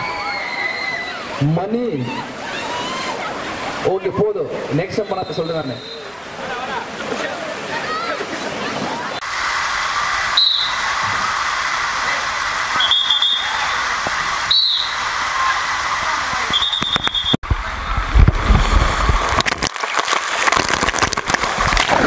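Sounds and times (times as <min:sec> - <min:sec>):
water running down slide: 0:00.0 - 0:22.0
splashing into pool: 0:18.2 - 0:22.0.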